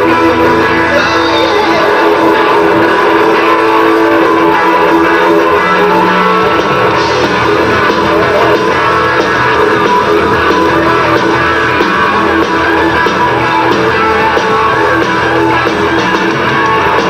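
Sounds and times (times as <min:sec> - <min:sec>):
electric guitar lead: 0:00.0 - 0:17.0
hard rock band playing: 0:00.0 - 0:17.0.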